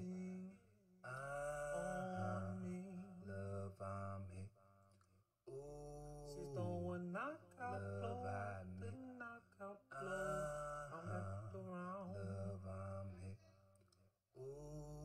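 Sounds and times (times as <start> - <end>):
person singing: 0.0 - 4.2, 5.5 - 13.3.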